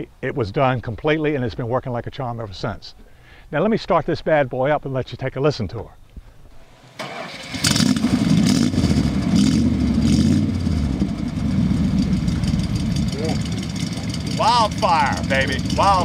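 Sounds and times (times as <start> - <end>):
van engine running: 6.7 - 16.0.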